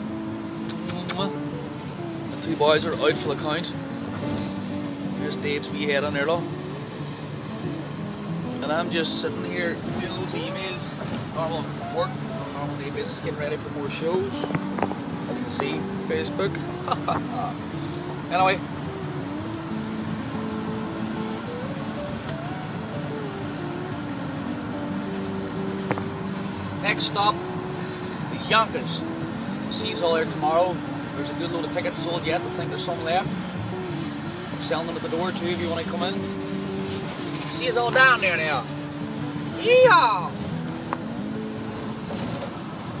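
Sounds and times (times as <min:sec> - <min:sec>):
car road noise: 0:00.0 - 0:43.0
slow melodic music: 0:00.0 - 0:43.0.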